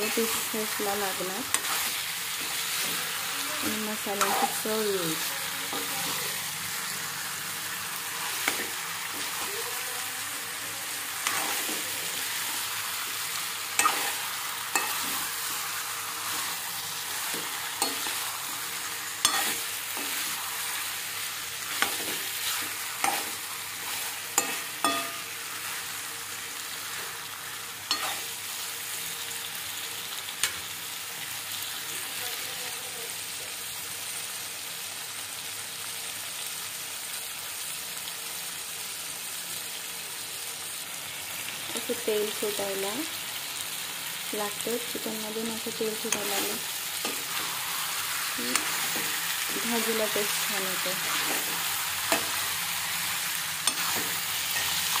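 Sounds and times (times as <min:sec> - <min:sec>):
chicken sizzling in a pan: 0:00.0 - 0:55.0
spoon scraping and knocking pan: 0:01.5 - 0:03.0, 0:13.7 - 0:20.7, 0:21.6 - 0:25.5, 0:27.9 - 0:28.4, 0:46.0 - 0:52.6, 0:53.6 - 0:55.0.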